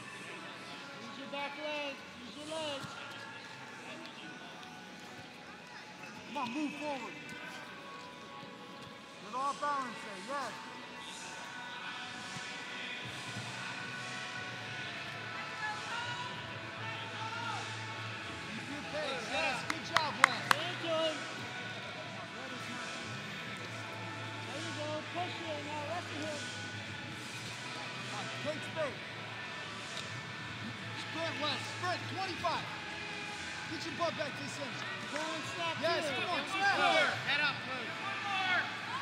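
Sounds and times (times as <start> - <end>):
faint shouted voices: 0.0 - 39.0.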